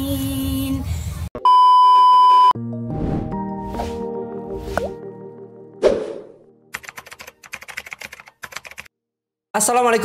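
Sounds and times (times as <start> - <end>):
rapid keyboard typing clicks: 6.7 - 8.9.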